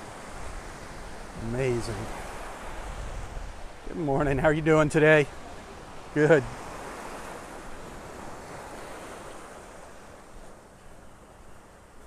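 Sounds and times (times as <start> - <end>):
small waves washing onto shore: 0.0 - 12.0
wind rumbling on microphone: 0.0 - 12.0.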